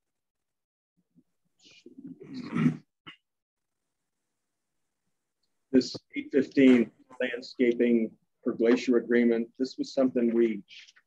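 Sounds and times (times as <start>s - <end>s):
person clearing throat: 2.2s - 3.2s.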